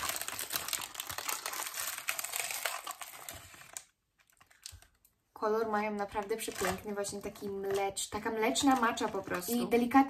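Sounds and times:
wrapper crinkling: 0.0 - 5.2, 6.0 - 9.9.

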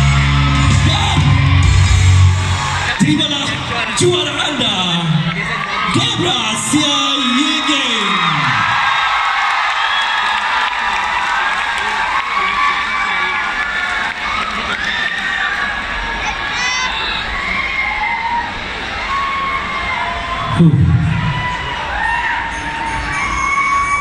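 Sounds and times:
crowd cheering and shouting: 0.0 - 24.0.

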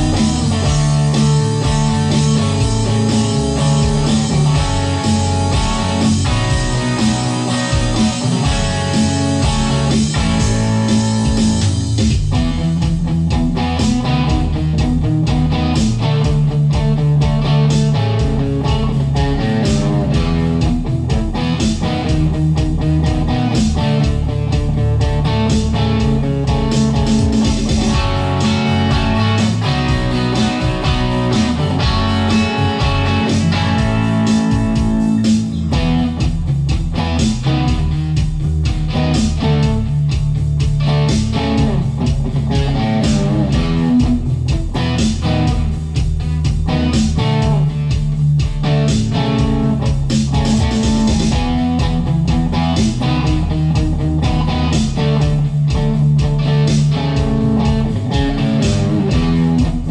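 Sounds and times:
drums and bass backing: 0.0 - 59.9
electric guitar rock rhythm: 0.0 - 59.9.

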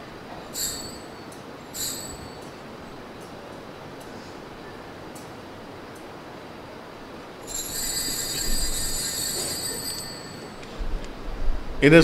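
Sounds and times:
altar bells ringing: 0.5 - 3.0, 7.4 - 10.8.

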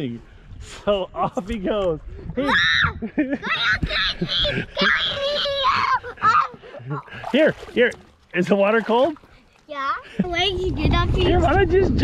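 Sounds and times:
people laughing: 3.0 - 7.3.

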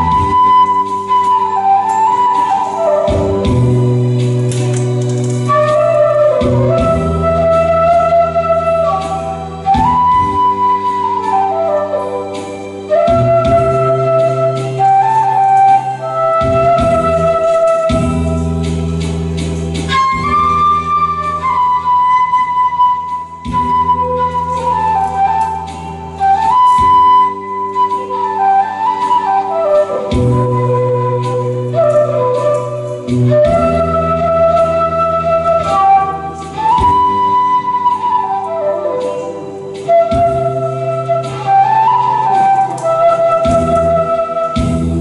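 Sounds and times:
bamboo flute melody: 0.0 - 45.0
low accompaniment chords: 0.0 - 45.0.

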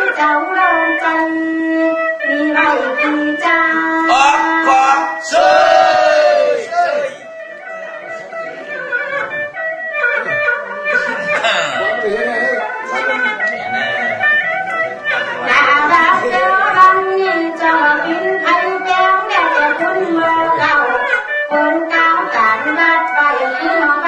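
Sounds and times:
plucked-string accompaniment: 0.0 - 24.0
folk singing: 2.3 - 7.3, 15.4 - 24.0.

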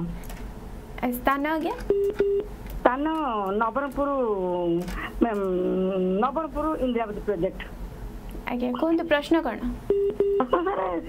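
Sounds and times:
short steady beep: 9.9 - 10.6.

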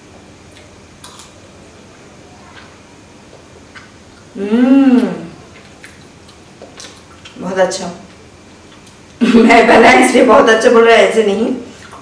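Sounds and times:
low room hum: 0.0 - 12.0
quiet chewing: 0.5 - 1.4, 2.4 - 4.4, 5.0 - 7.4, 8.0 - 9.2.

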